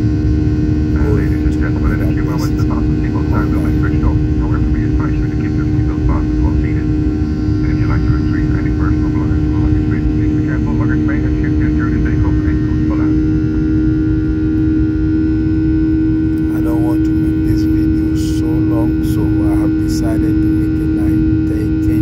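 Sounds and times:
airliner engine rumble: 0.0 - 22.0
droning tone: 0.0 - 22.0.

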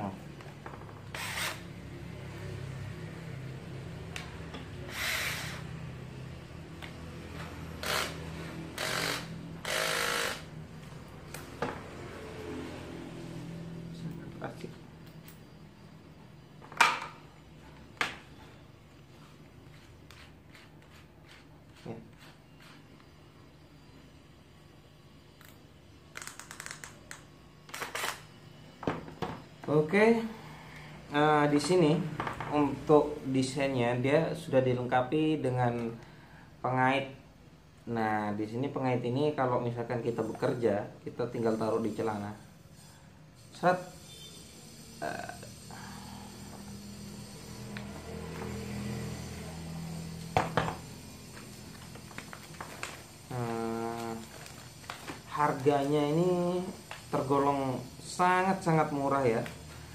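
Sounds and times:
short bursts of noise: 1.1 - 1.7
cordless drill motor humming: 1.1 - 1.8, 4.8 - 5.8, 7.8 - 10.6.

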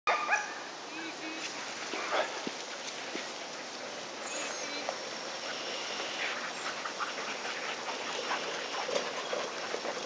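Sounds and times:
huskies barking and yipping: 0.1 - 10.0.

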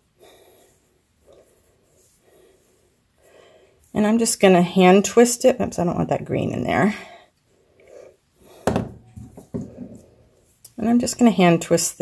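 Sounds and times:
soft breaths: 0.0 - 4.0, 6.8 - 8.7.

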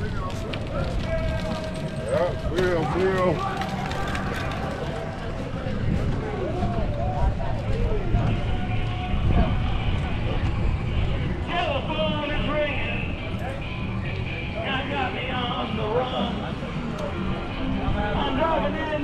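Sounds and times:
passers-by talking: 0.0 - 19.0.

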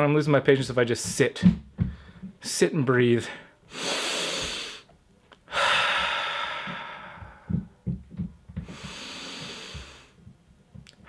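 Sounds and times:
man breathing deeply: 3.3 - 4.9, 5.5 - 7.9, 8.6 - 10.2
faint low knocks: 6.7 - 8.8.

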